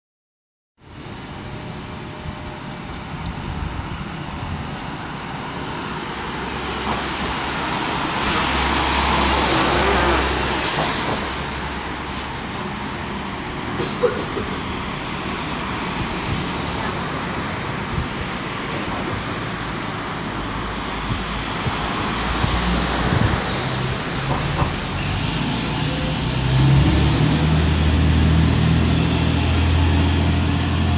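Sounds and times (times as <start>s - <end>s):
bus diesel engine running: 0.8s - 30.9s
city traffic noise: 0.8s - 30.9s.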